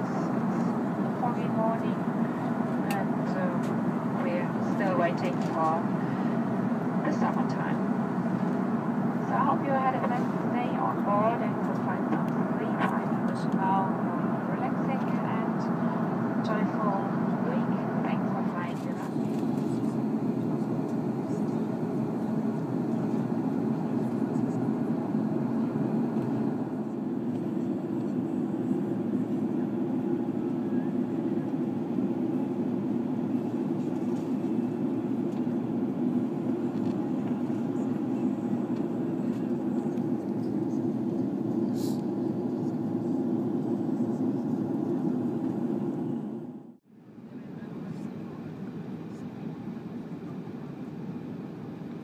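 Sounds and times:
airliner cabin drone: 0.0s - 52.0s
voice over cabin pa: 7.1s - 7.8s, 9.2s - 15.6s, 16.4s - 19.2s.

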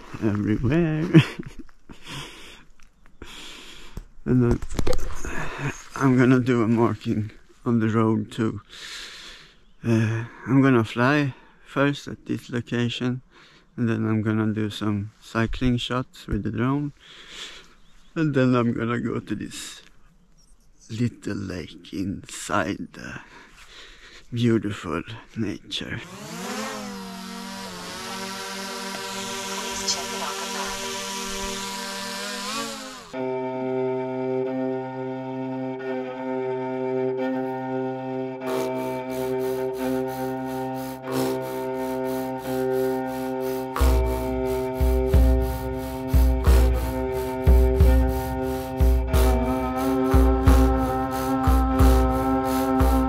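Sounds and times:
drone motors buzzing whine: 26.0s - 36.1s, 37.2s - 53.0s
sustained synth chords: 26.0s - 53.0s
heavy bass beat: 38.5s - 53.0s
percussion: 43.7s - 53.0s.

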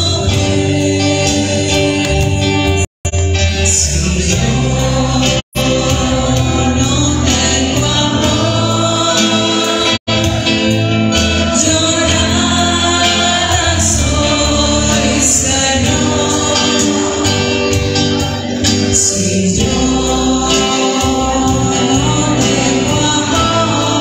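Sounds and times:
musical accompaniment: 0.0s - 24.0s
choir singing: 3.7s - 24.0s.

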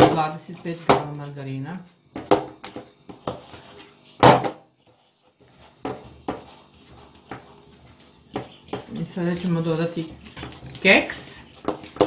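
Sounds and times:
fork scraping ceramic bowl: 5.5s - 12.0s.

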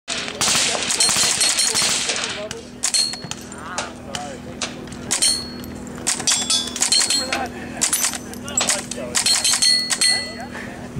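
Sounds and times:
muffled rifle shots: 0.1s - 3.1s
steel targets pinging: 0.1s - 3.9s, 4.6s - 10.5s.

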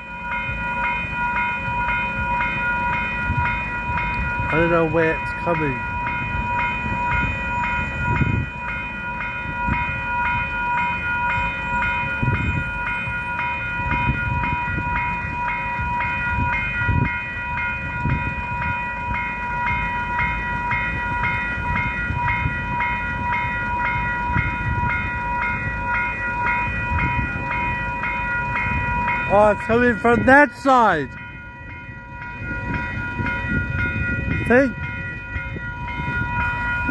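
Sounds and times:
level crossing warning bells: 0.0s - 36.9s.

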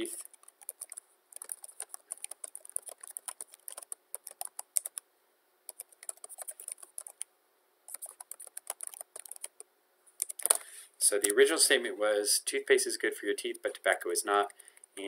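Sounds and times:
typing on computer keyboard: 0.1s - 5.0s, 5.7s - 7.2s, 7.9s - 9.6s, 10.2s - 10.6s.

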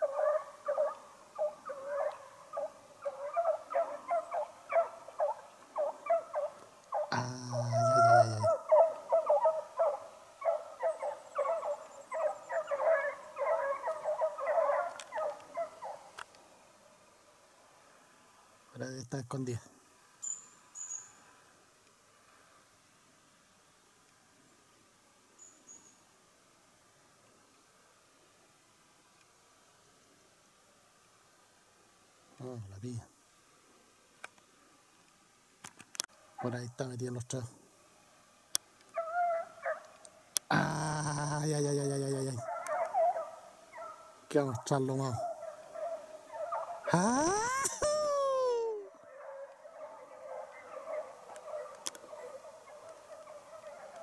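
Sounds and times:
hounds baying: 0.0s - 16.1s, 38.9s - 40.0s, 42.1s - 44.2s, 45.0s - 54.0s
dog yelp: 7.8s - 16.0s, 42.4s - 44.0s.

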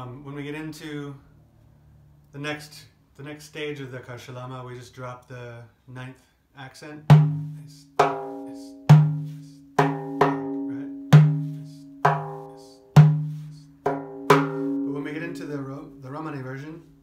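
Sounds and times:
man's voice: 2.5s - 13.8s, 14.8s - 16.9s
frame drum rhythm: 7.1s - 17.0s.

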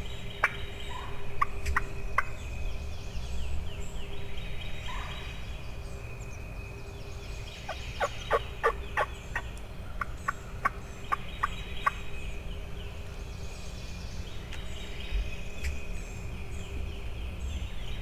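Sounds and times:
wild turkey calling: 7.6s - 12.0s.

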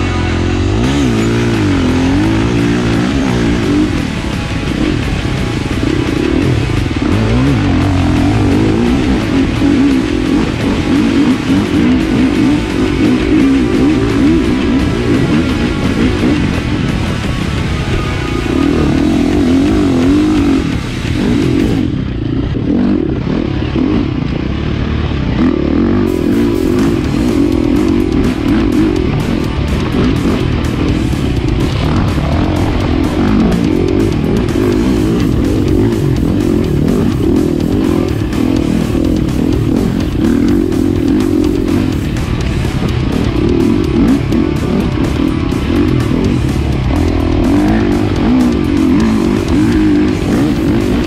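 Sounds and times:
dirt bike engine revving: 0.0s - 51.0s
guitar music: 0.0s - 51.0s.

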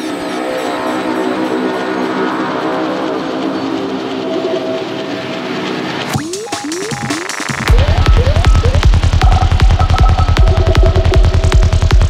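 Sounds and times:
sustained synth chord: 0.2s - 12.0s
high held synth tone: 6.1s - 12.0s.

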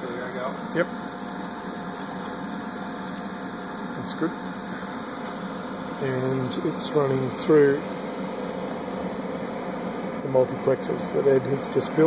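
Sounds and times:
machine hum with hiss: 0.0s - 12.0s.

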